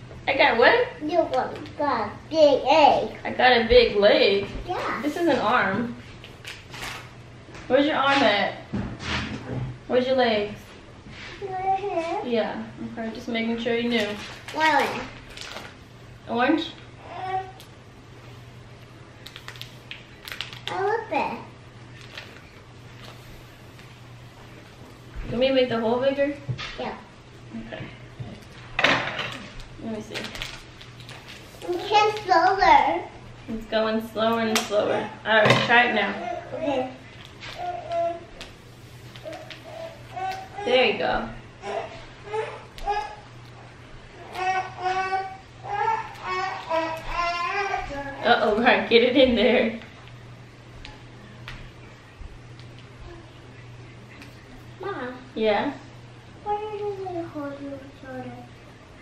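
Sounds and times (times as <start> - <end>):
low steady hum: 0.0 - 59.0
plastic bag crinkling: 13.8 - 15.8, 19.2 - 21.0, 21.9 - 23.2, 29.4 - 32.3.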